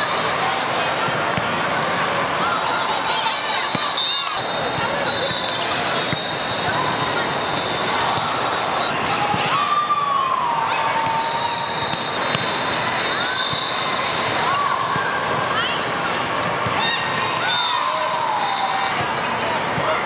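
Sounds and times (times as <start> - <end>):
volleyball hits: 10.9 - 13.8
sneaker squeaks on court: 11.0 - 13.9.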